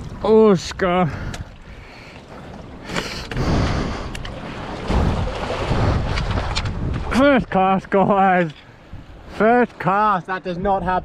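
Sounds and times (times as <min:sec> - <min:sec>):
water splashing against rock: 0:01.2 - 0:07.3
wind buffeting microphone: 0:03.3 - 0:07.5.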